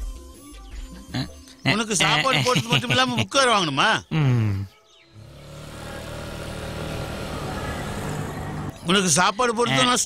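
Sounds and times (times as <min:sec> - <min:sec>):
scooter engine approaching: 0:05.2 - 0:08.8.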